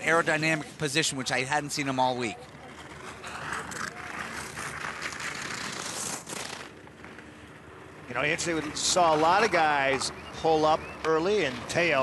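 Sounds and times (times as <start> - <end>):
skis scraping over icy snow: 0.0 - 6.7.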